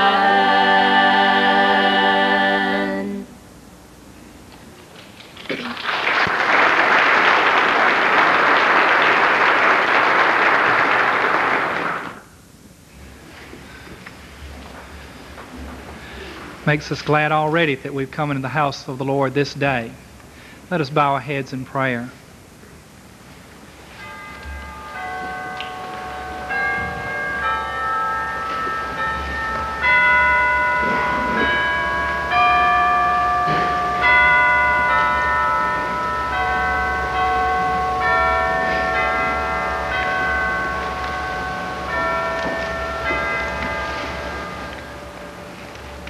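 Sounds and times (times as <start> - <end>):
bell chimes playing a hymn: 0.0 - 3.2, 23.8 - 46.0.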